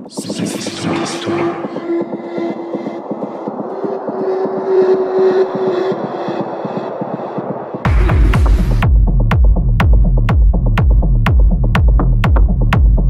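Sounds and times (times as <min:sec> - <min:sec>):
electronic dance music: 0:00.0 - 0:10.5.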